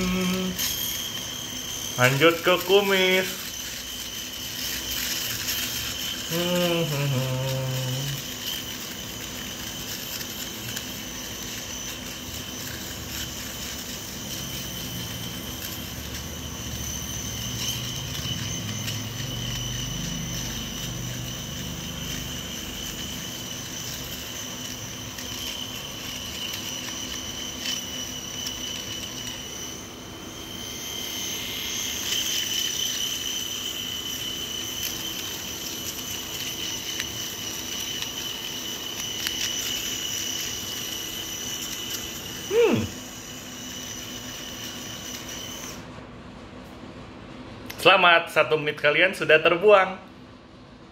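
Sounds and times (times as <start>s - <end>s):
electric shaver buzzing: 0.0s - 45.9s.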